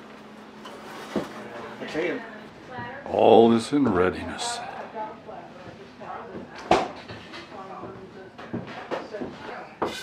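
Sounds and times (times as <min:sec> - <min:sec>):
faint background voices: 0:01.4 - 0:10.0.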